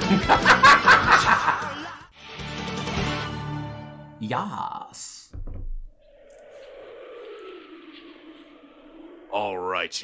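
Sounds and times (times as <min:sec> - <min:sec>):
falling whistling tone: 0:05.9 - 0:10.0.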